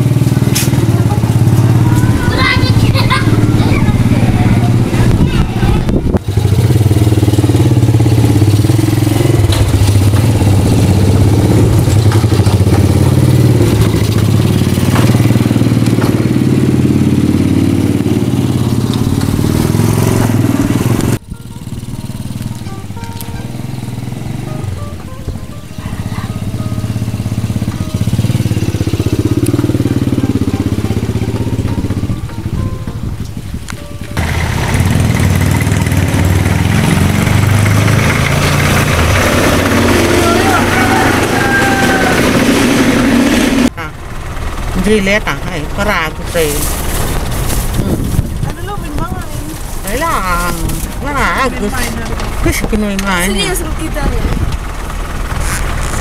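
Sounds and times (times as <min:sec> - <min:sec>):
car engine running: 0:00.0 - 0:56.0
small motorcycle engine running: 0:00.0 - 0:56.0.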